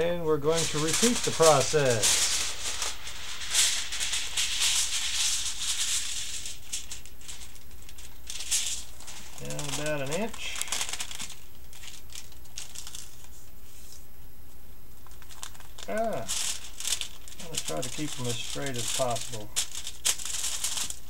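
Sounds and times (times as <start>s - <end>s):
aluminum foil crinkling: 0.4s - 21.0s.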